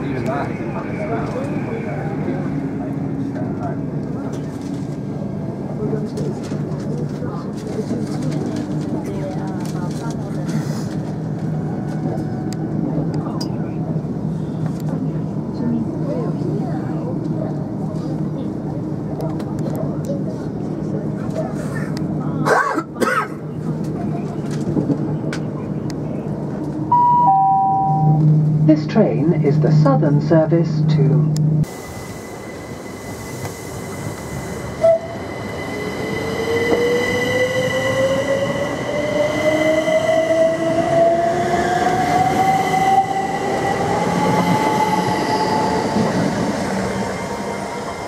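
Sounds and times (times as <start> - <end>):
indistinct passenger conversation: 0.0 - 32.2
train wheel and track rumble: 0.0 - 48.0.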